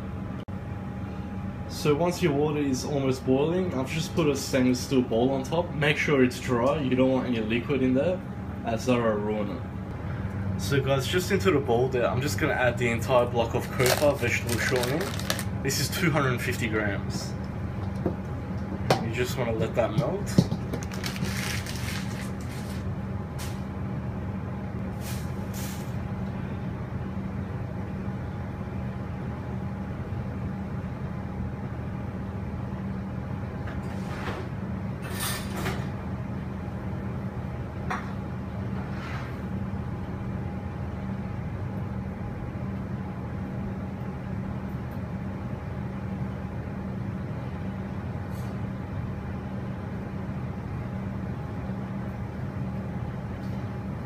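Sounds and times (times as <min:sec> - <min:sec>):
stovetop hum and hiss: 0:00.0 - 0:54.0.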